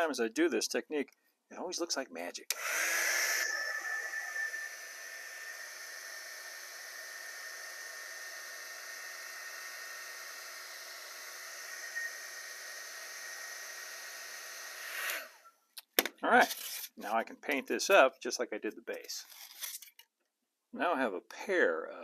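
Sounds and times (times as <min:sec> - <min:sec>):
heat gun fan whirring: 0:02.5 - 0:15.5.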